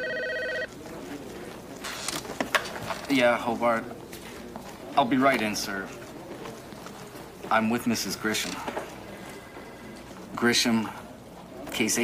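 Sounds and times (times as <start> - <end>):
desk telephone ringing: 0.0 - 0.7.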